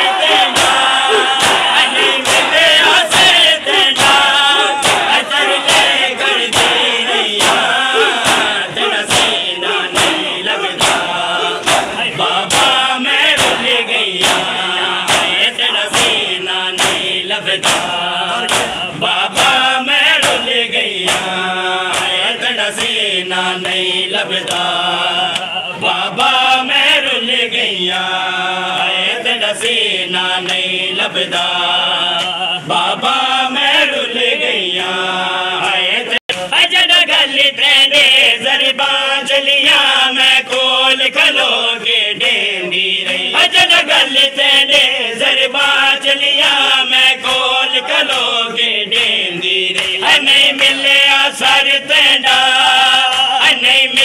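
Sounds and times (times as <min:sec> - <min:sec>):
men chanting together: 0:00.0 - 0:54.0
hands slapping chests: 0:00.2 - 0:14.5, 0:15.1 - 0:16.2, 0:16.8 - 0:21.3, 0:21.9 - 0:23.0, 0:47.2 - 0:50.9.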